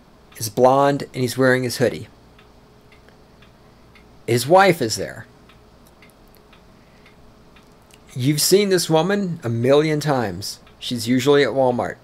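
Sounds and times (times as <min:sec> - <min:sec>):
faint steady hum: 0:00.0 - 0:12.0
soft irregular ticks: 0:00.2 - 0:11.5.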